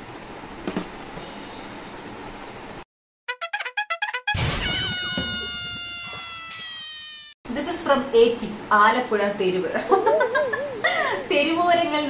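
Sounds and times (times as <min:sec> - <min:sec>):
long falling comic note: 0:03.3 - 0:07.2.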